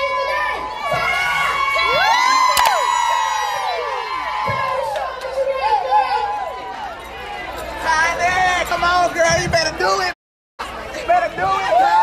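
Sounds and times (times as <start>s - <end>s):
crowd cheering and whooping: 0.0s - 7.4s.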